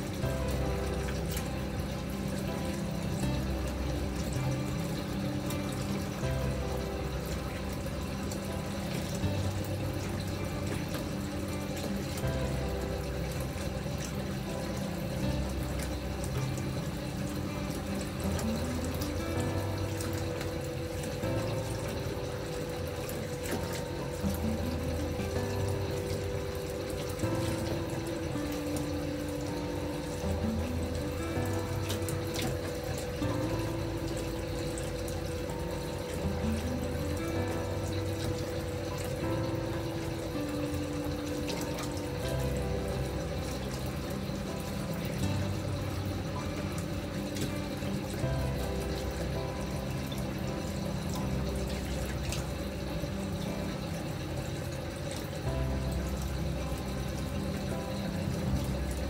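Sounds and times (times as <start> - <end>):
gentle background music: 0.0 - 59.0
water pouring into bathtub: 0.0 - 59.0.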